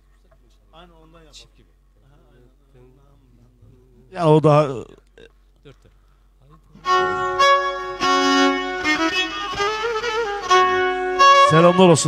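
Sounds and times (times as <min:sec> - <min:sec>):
bowed fiddle sustained notes: 0:06.8 - 0:12.0.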